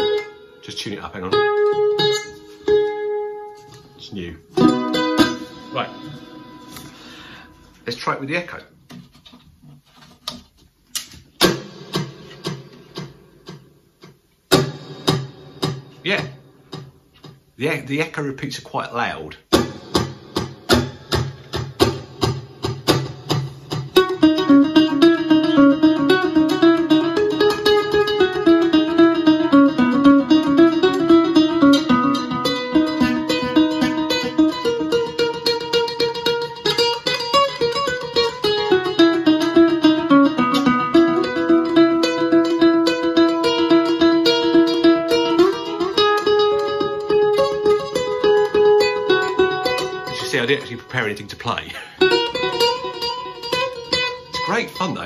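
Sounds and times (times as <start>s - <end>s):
ukulele with echo effect: 0.0s - 7.6s, 11.4s - 13.7s, 14.5s - 17.0s, 19.5s - 55.0s.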